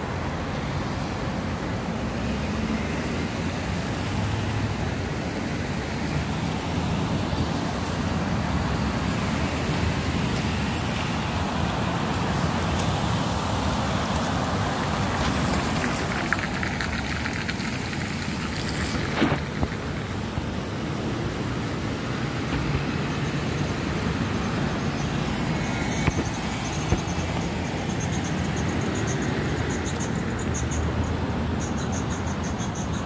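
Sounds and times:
road traffic passing: 0:00.0 - 0:33.0.

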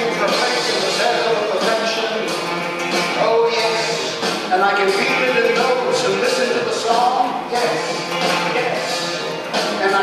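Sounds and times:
man singing into a microphone: 0:00.0 - 0:02.4, 0:03.1 - 0:10.0
musical accompaniment: 0:00.0 - 0:10.0.

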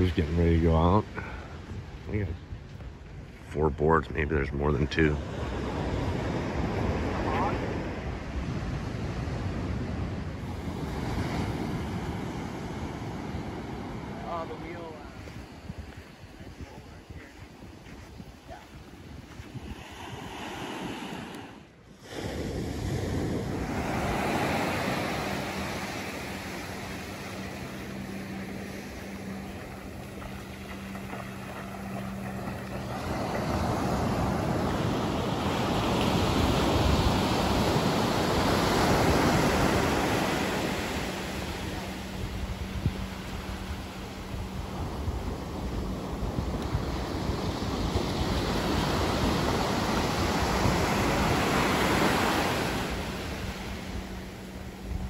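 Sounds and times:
ocean surf breaking: 0:04.2 - 0:16.3, 0:18.4 - 0:55.0.

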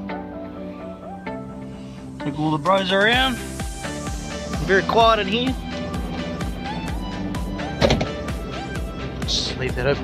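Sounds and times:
background music with steady beat: 0:00.0 - 0:10.0.

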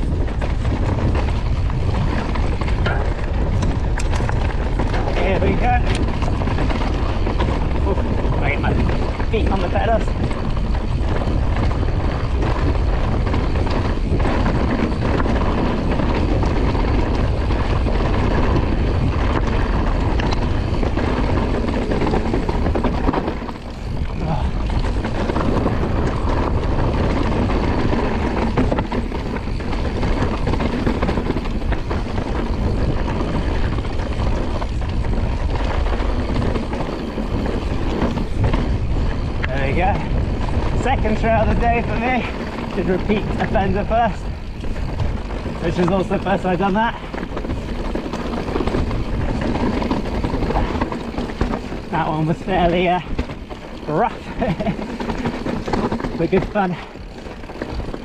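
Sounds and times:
bike rattling: 0:00.0 - 0:58.0
tyres rolling over stones: 0:00.0 - 0:58.0
wind buffeting microphone: 0:00.0 - 0:58.0.

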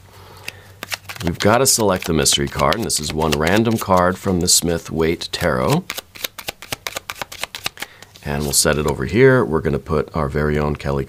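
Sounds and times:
cards being shuffled: 0:00.4 - 0:09.1.

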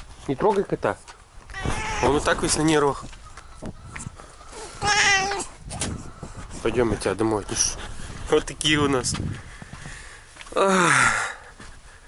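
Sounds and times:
cat meowing: 0:01.5 - 0:02.4, 0:04.6 - 0:05.5.

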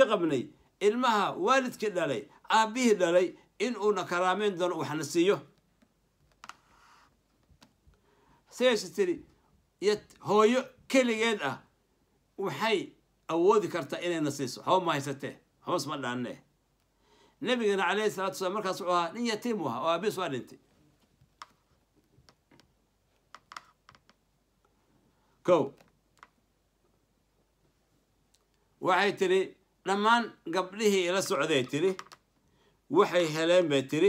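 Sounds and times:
soft faint hiss: 0:00.0 - 0:34.0.

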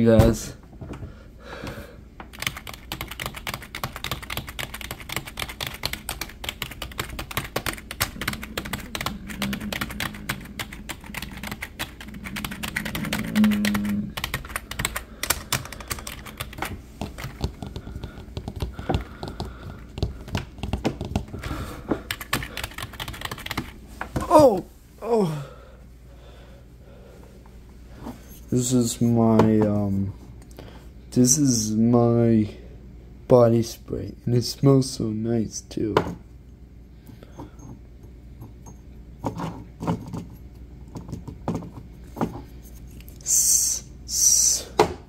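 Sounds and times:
keyboard keys clicking: 0:02.3 - 0:21.3, 0:22.1 - 0:23.7
low hum: 0:07.0 - 0:15.2.

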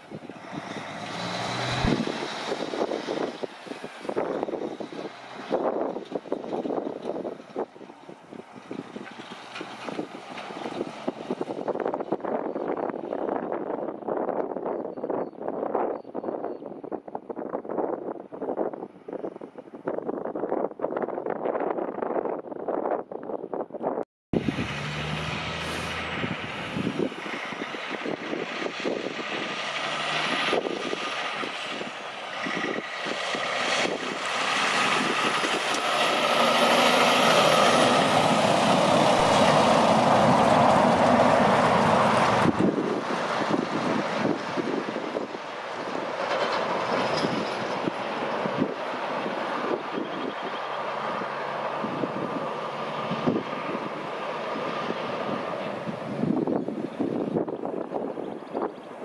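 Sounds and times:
distant truck: 0:00.0 - 0:13.4, 0:24.4 - 0:59.0
truck passing close by: 0:00.0 - 0:13.6, 0:24.4 - 0:59.0
wind on microphone: 0:00.0 - 0:59.0.

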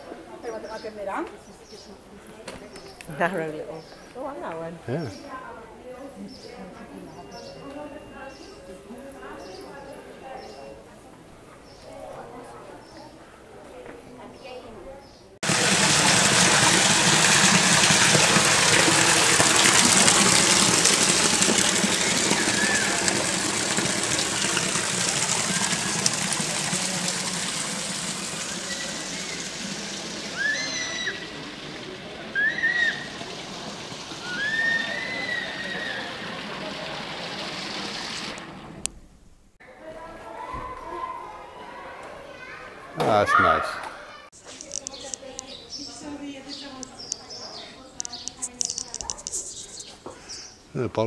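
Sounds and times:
fountain water splashing: 0:15.4 - 0:38.8
high-pitched calls: 0:28.2 - 0:31.4, 0:34.2 - 0:36.1.

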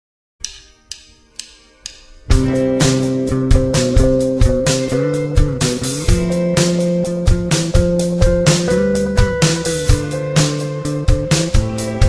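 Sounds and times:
quiet percussive clicks: 0:00.4 - 0:02.4.

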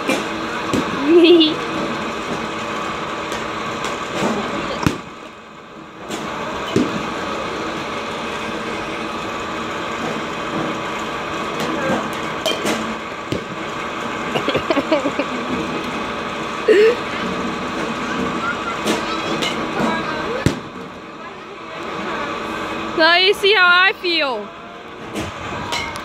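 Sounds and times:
pitching machines humming: 0:00.0 - 0:26.0.

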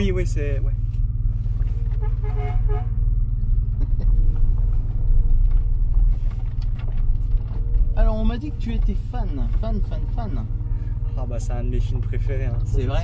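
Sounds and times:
car engine droning: 0:00.0 - 0:13.0.

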